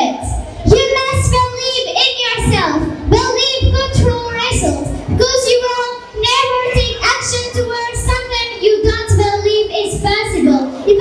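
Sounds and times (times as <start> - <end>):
girl reciting through amplification: 0.0 - 11.0.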